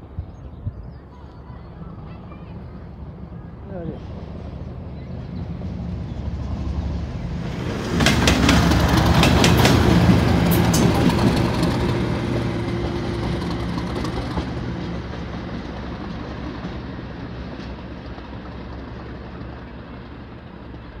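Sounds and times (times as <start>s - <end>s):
diesel locomotive engine passing: 0.9s - 21.0s
wheels clicking over rail joints: 7.6s - 21.0s.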